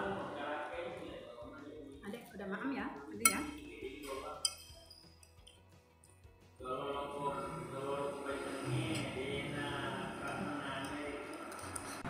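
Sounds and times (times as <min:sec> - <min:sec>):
metal cutlery clinking on plate: 0:03.3 - 0:05.6, 0:10.2 - 0:12.0.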